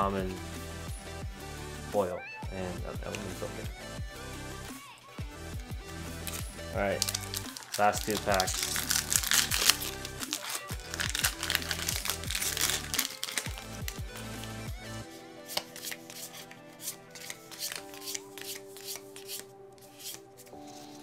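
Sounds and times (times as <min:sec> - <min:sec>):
background music with held tones: 0:00.0 - 0:21.0
foil wrapper crinkling and tearing: 0:06.2 - 0:14.6, 0:17.2 - 0:19.3
trading cards clicking: 0:07.0 - 0:14.6, 0:15.5 - 0:20.2.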